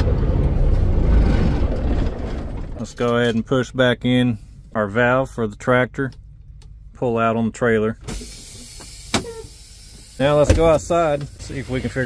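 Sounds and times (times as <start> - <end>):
compressed air hissing: 8.1 - 12.0.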